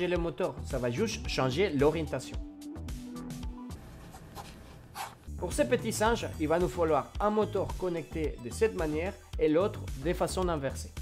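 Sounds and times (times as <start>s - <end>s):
quiet background music: 0.0s - 11.0s
pen scribbling on paper: 4.0s - 5.2s.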